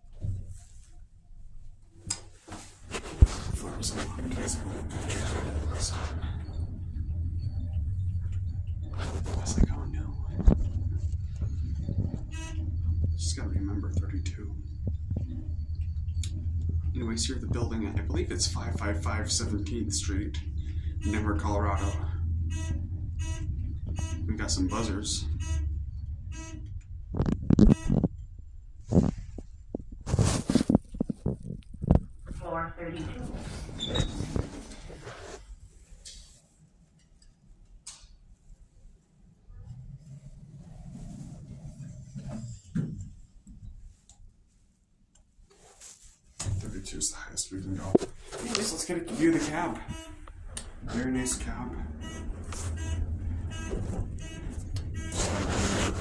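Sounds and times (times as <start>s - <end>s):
short pitched tones: 4.3s - 19.5s, 20.4s - 28.4s, 49.3s - 56.0s
elevator buzzer: 4.4s - 18.2s, 20.5s - 28.2s, 49.7s - 56.0s
knocks and thumps: 42.1s - 43.2s.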